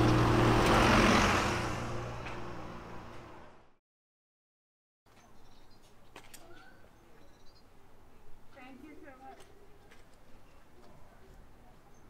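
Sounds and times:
bus passing by: 0:00.0 - 0:03.8.

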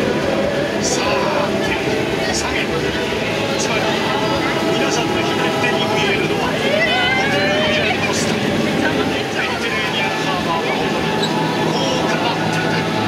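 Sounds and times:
boat engine running: 0:00.0 - 0:13.0
people talking: 0:00.0 - 0:13.0.

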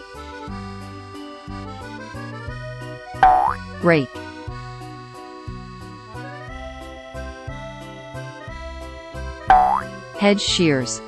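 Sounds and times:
cheerful children's music: 0:00.0 - 0:11.0
cartoon boing: 0:03.2 - 0:03.6, 0:09.5 - 0:09.9.

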